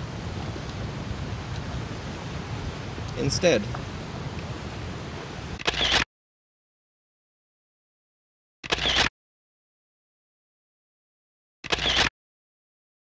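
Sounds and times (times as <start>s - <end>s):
wind noise: 0.0s - 5.9s
camera shutter: 5.6s - 6.1s, 8.6s - 9.1s, 11.6s - 12.1s.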